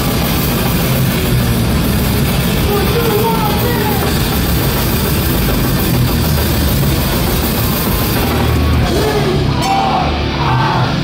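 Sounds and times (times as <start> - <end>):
punk band playing live: 0.0 - 11.0.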